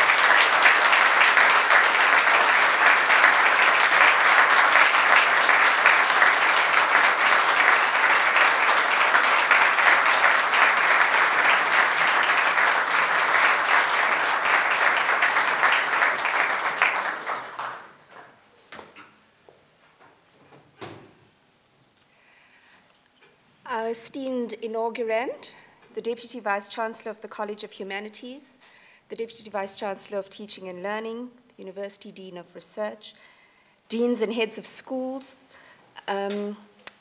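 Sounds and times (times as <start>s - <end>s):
audience applauding: 0.0s - 18.4s.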